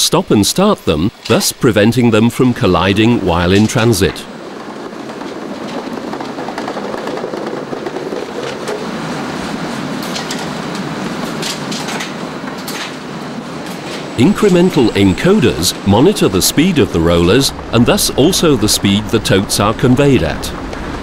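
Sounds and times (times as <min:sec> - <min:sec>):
roller conveyor running: 0:00.2 - 0:21.0.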